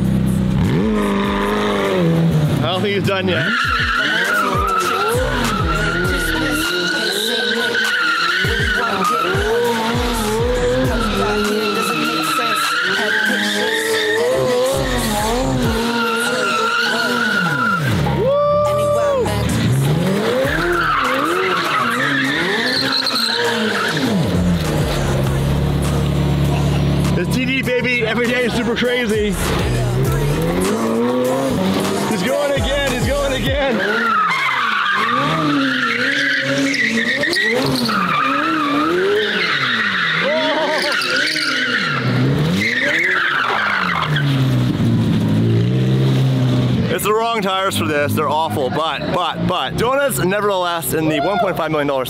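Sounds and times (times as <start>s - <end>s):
car engine revving: 0.0s - 52.0s
tyres squealing: 0.6s - 26.2s, 27.1s - 44.7s.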